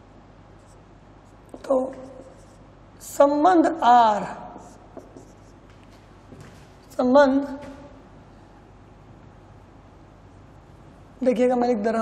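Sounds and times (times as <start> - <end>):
marker pen writing on whiteboard: 0.6 - 2.7, 4.5 - 6.1
person speaking: 0.6 - 5.7.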